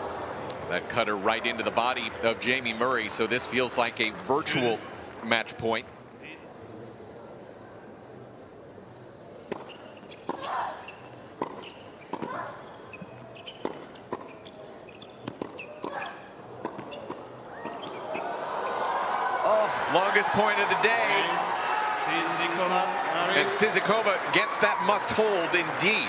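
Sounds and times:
shoe squeaks: 9.5s - 18.8s
racket striking tennis ball: 15.2s - 17.2s
crowd cheering and applause: 18.0s - 26.0s
players shouting: 18.0s - 26.0s.

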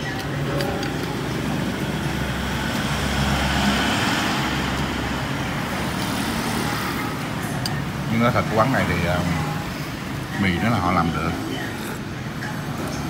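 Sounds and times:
road traffic rumble: 0.0s - 13.0s
vehicle passing close by: 2.3s - 6.7s.

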